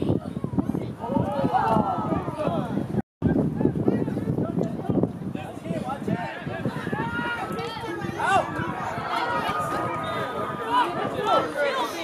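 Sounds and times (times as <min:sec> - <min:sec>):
people calling and talking: 0:00.0 - 0:12.0.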